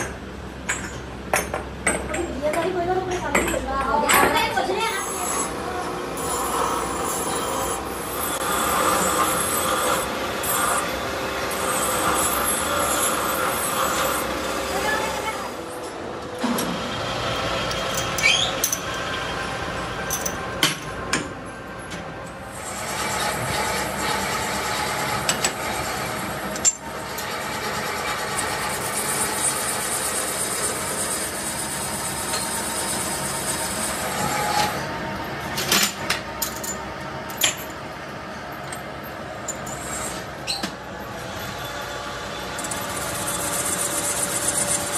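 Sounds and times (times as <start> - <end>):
scraping and rasping in a workshop: 0.0 - 44.9.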